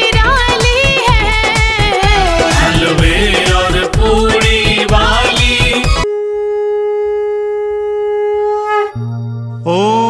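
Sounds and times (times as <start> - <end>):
conch shell blown in long note: 6.0 - 9.1.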